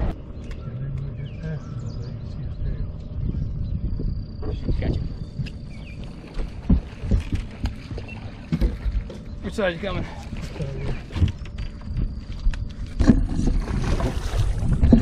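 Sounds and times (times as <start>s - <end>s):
boat deck rumble: 0.0s - 15.0s.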